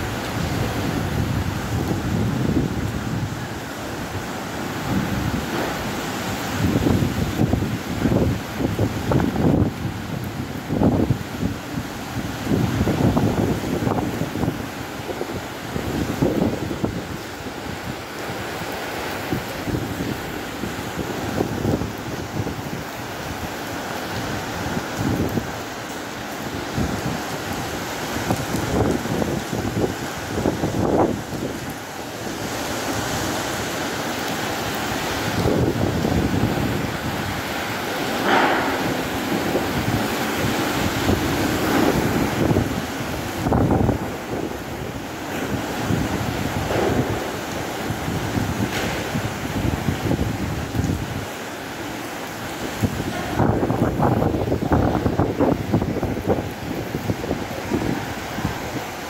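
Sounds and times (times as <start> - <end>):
wind buffeting microphone: 0.0 - 51.4, 52.2 - 59.0
driving rain: 0.0 - 59.0
wind gusting through trees: 0.0 - 59.0.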